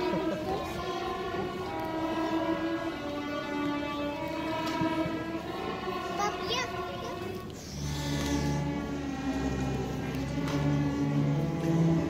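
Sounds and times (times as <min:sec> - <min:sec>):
string orchestra held chords: 0:00.0 - 0:12.0.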